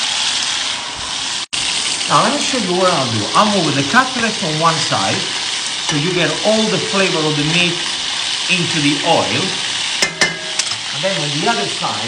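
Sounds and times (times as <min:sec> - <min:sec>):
meat sizzling in a pan: 0:00.0 - 0:12.0.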